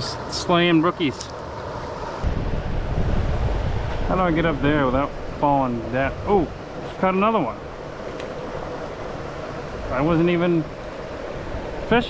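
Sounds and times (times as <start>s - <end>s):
mountain stream water rushing: 0.0s - 12.0s.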